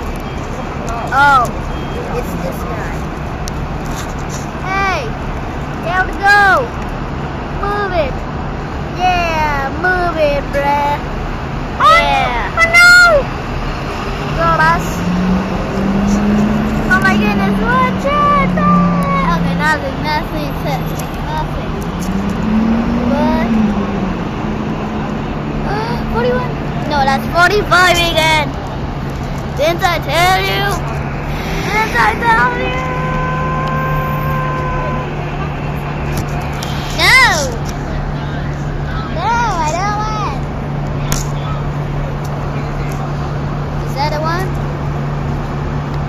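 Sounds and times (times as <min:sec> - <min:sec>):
bus engine humming: 0:00.0 - 0:46.0
high-pitched voices calling: 0:14.2 - 0:23.9, 0:29.6 - 0:35.6
steady high tone: 0:14.3 - 0:21.8, 0:30.2 - 0:37.6.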